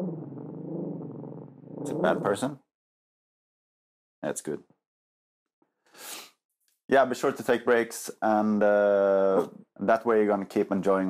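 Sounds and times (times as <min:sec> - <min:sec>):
small dog growling: 0:00.0 - 0:02.6.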